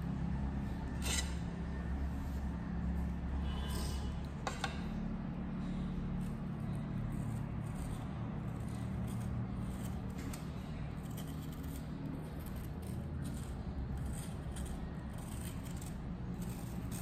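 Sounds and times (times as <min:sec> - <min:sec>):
steady low hum: 0:00.0 - 0:17.0
knife scraping fruit skin: 0:00.2 - 0:05.0, 0:05.6 - 0:17.0.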